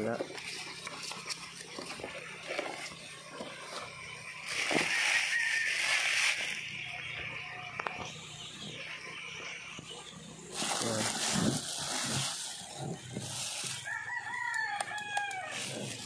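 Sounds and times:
rooster crowing: 4.6 - 6.2, 13.7 - 16.0
plastic bag crinkling: 10.6 - 13.9.

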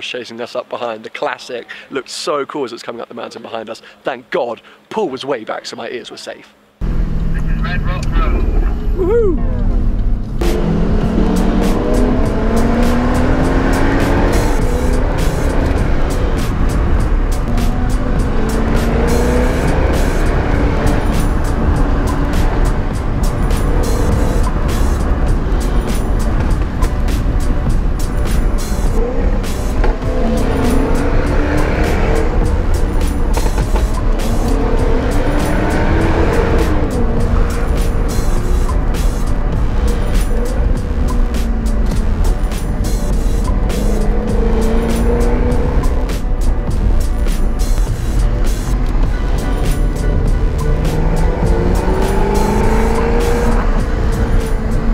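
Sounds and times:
car engine accelerating: 6.8 - 54.9
exhaust crackles: 6.8 - 54.9.

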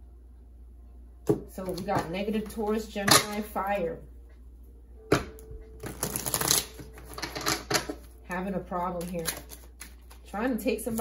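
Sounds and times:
cards snapping: 5.8 - 7.9
cards rustling while shuffled: 8.7 - 11.0.

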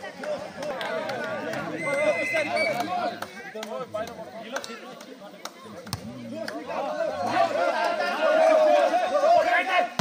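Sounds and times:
crowd of spectators voices: 0.0 - 10.0.

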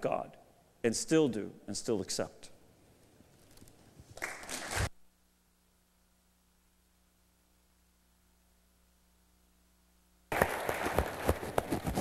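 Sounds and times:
audience applause: 10.3 - 11.5.

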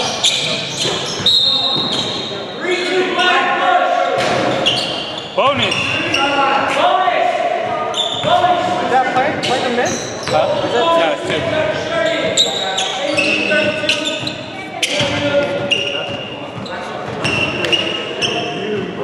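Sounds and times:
players' voices in large hall: 0.0 - 19.0.

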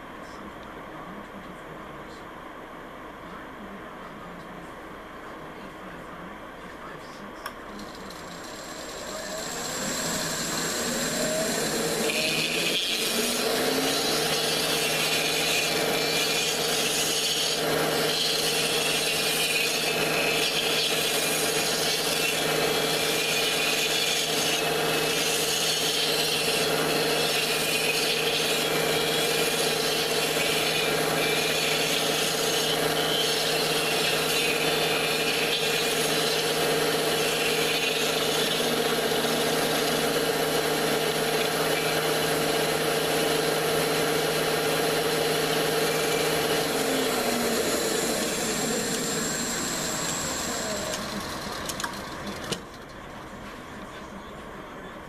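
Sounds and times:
lathe motor hum: 7.5 - 54.7
cutter scraping wood: 7.7 - 52.6.

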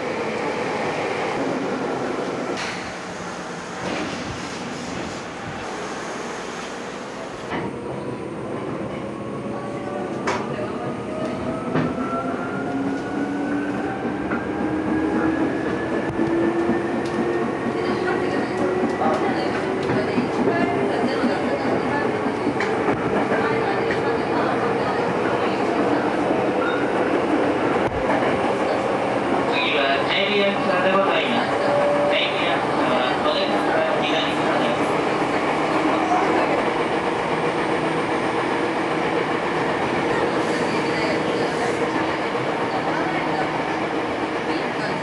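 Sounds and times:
train cars rumbling: 0.0 - 45.0.

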